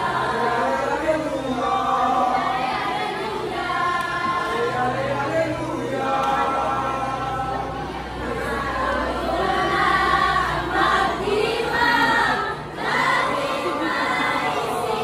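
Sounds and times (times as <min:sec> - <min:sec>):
women and girls choir singing: 0:00.0 - 0:15.0.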